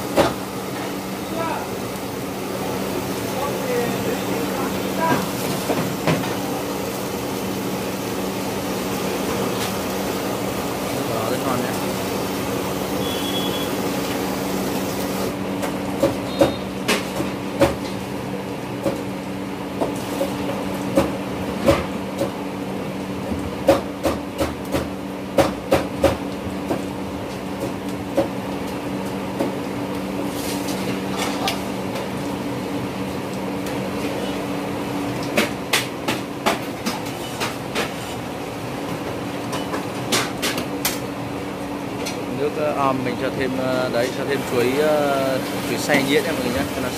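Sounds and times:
gas burners humming: 0.0 - 46.9
kitchen ventilation hum: 0.0 - 46.9.

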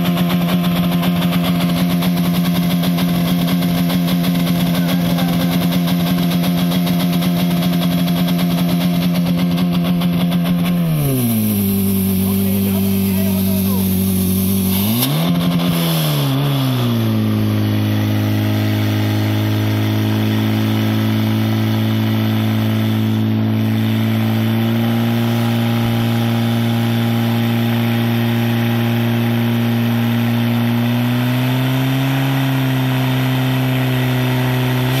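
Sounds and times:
pump engine running fast: 0.0 - 35.0.

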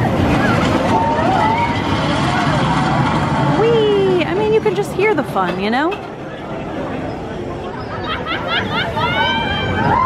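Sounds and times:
roller coaster cars rumbling on track: 0.0 - 10.0.

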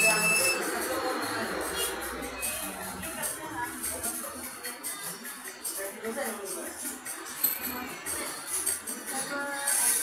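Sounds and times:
indistinct voices: 0.0 - 5.6
background music: 0.0 - 10.0.

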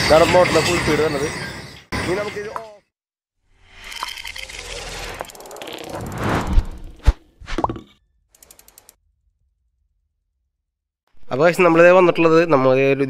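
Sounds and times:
short rising tone: 4.7 - 7.5
noisy whoosh: 4.7 - 7.6.

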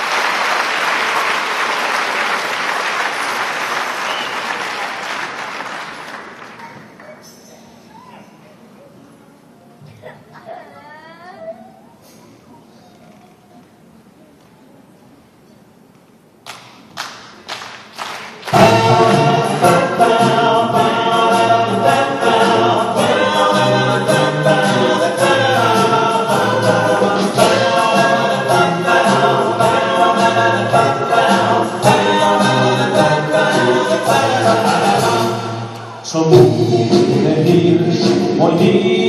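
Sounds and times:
male vocal ensemble singing: 18.5 - 39.0.

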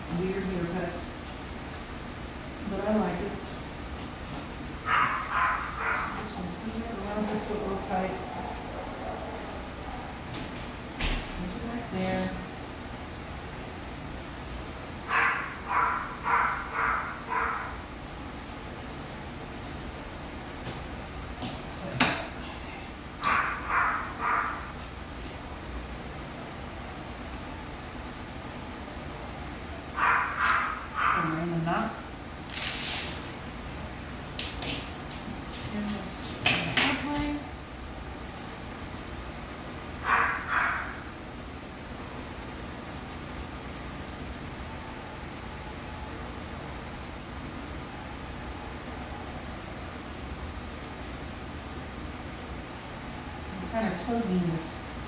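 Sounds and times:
scissors snipping dog hair: 1.3 - 2.1, 4.9 - 10.6, 13.7 - 19.2, 38.2 - 39.4, 42.3 - 45.0, 49.4 - 55.0.

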